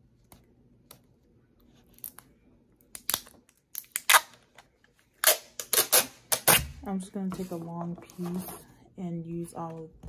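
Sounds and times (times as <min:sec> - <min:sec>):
tape ripping off roll: 0:05.2 - 0:06.8.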